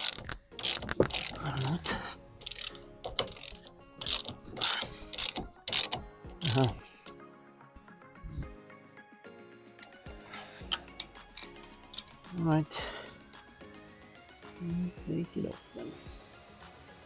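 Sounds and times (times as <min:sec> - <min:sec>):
ratchet wrench clicking: 0:00.0 - 0:06.8, 0:10.6 - 0:12.3.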